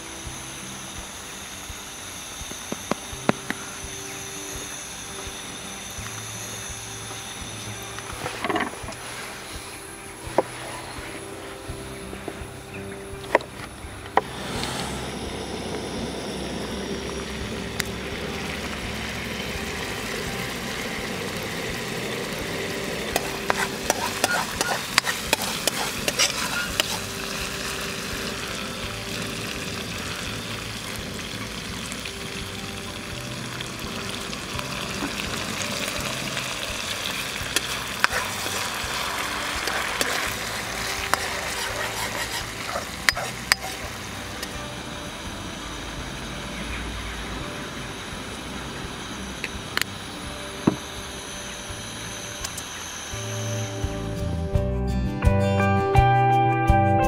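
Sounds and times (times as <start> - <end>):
sauce sizzling in a frying pan: 16.8 - 45.2
metal spatula scraping a pan: 23.2 - 27.2, 38.0 - 43.9.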